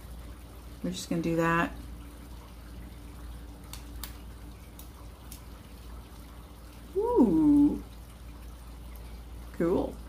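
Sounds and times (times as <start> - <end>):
steady rain falling: 3.4 - 8.1.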